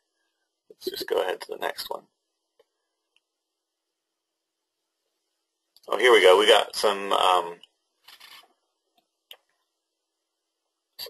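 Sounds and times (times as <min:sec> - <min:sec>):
soft rustling: 0:08.0 - 0:08.7.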